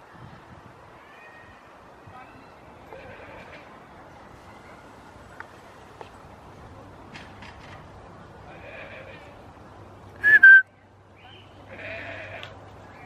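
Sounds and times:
goat bleating: 0:02.9 - 0:03.7, 0:08.5 - 0:09.4, 0:11.7 - 0:12.6.

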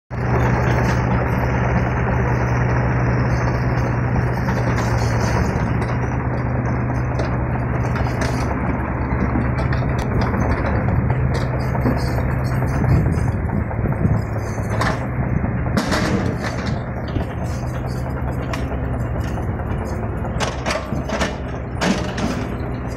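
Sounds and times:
excavator diesel engine running: 0:00.1 - 0:22.9.

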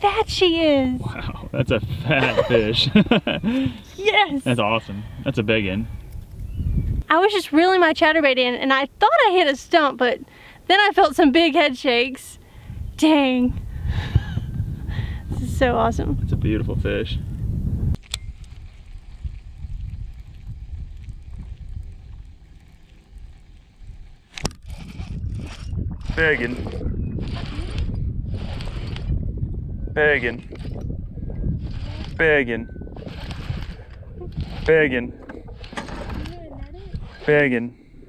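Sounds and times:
wind rumble on microphone: 0:00.0 - 0:07.1, 0:12.4 - 0:38.0
fishing reel cranking: 0:18.0 - 0:25.7, 0:31.6 - 0:32.2, 0:33.0 - 0:34.8.

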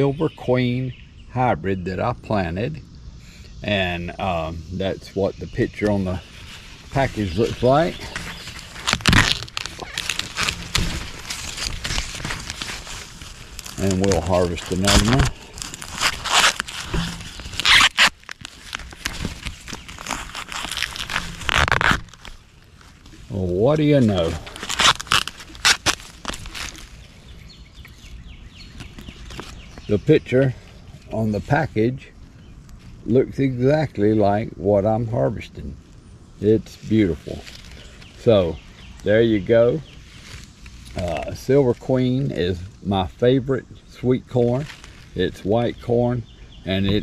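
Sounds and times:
corn husks rustling: 0:03.2 - 0:32.1, 0:36.4 - 0:47.0.

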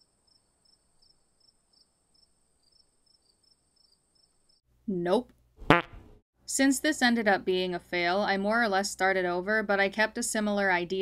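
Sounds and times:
crickets chirping: 0:00.0 - 0:04.6.

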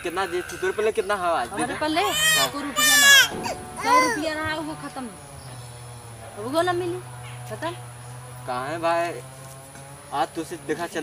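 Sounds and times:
toddler crying: 0:01.8 - 0:04.4.

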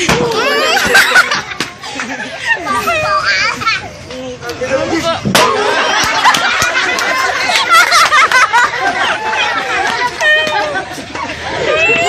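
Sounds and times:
people shouting and chattering: 0:00.0 - 0:12.0.

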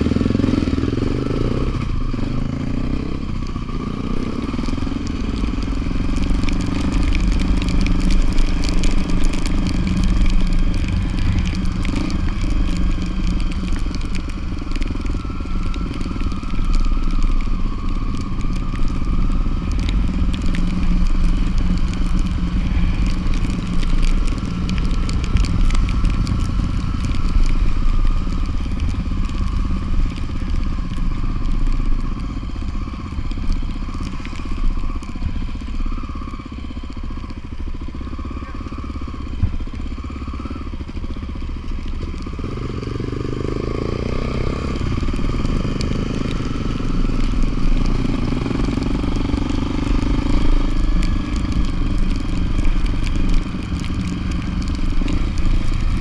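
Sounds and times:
motorcycle engine running: 0:00.0 - 0:56.0
wind and road noise: 0:00.0 - 0:56.0.

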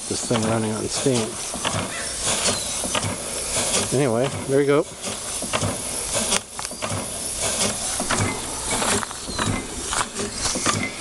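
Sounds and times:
steam engine exhaust puffing: 0:00.0 - 0:11.0.

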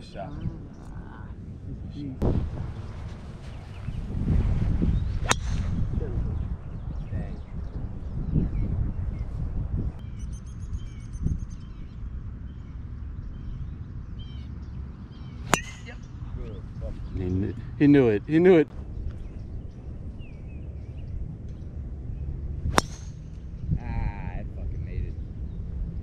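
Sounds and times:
wind rumble on microphone: 0:00.0 - 0:17.9, 0:18.5 - 0:26.0
golf driver striking ball: 0:05.2 - 0:05.8, 0:15.5 - 0:16.1, 0:22.7 - 0:23.2
bird chirping: 0:10.0 - 0:17.8.

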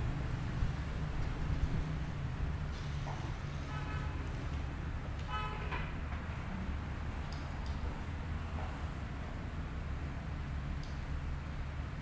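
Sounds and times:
low traffic rumble: 0:00.0 - 0:12.0
vehicle horn toots: 0:05.3 - 0:05.8.

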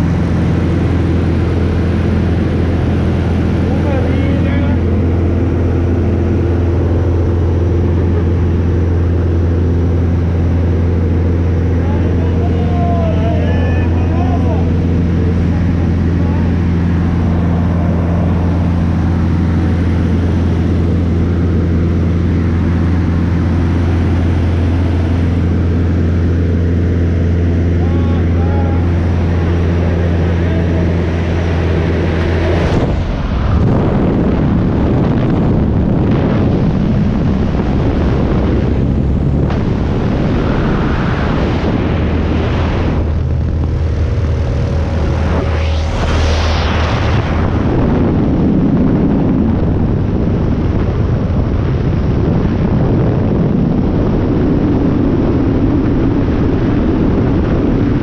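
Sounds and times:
propeller plane engine droning: 0:00.0 - 0:58.0
faint voices: 0:11.7 - 0:16.7.

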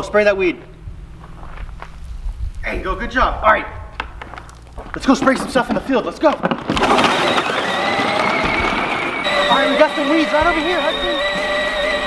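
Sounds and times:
toy tractor electric motor whine: 0:06.6 - 0:12.0.

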